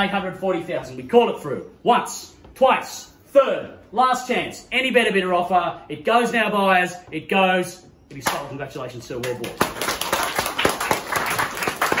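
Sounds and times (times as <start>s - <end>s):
people clapping: 9.1s - 12.0s.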